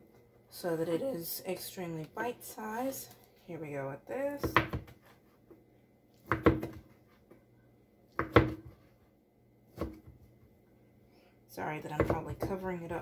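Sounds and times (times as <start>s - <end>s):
knife chopping on cutting board: 4.4s - 5.1s, 6.2s - 6.9s, 8.2s - 8.8s, 9.7s - 10.2s.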